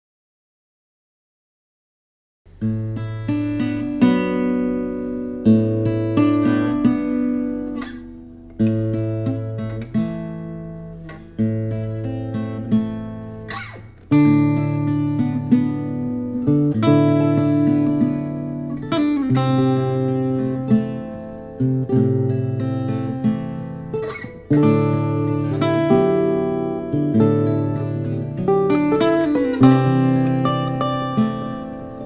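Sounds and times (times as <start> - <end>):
acoustic guitar strumming chords: 2.5 - 32.0.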